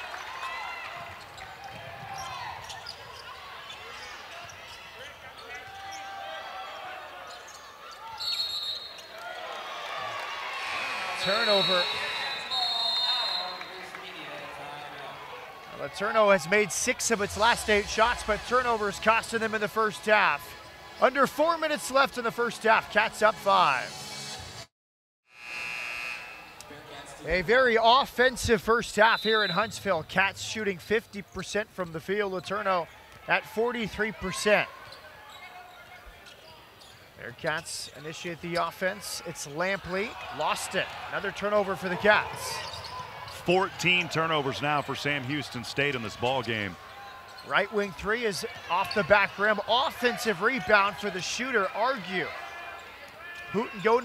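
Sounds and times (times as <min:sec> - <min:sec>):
faint crowd noise: 0:00.0 - 0:24.7, 0:26.4 - 0:54.0
players' voices: 0:01.0 - 0:24.0, 0:26.6 - 0:54.0
crowd chatter: 0:09.2 - 0:23.9
arena horn tone: 0:25.3 - 0:26.6.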